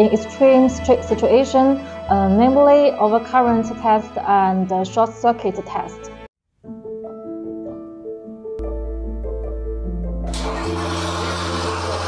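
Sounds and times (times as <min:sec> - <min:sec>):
background piano music: 0:00.0 - 0:12.0
electric arc hissing: 0:10.3 - 0:12.0.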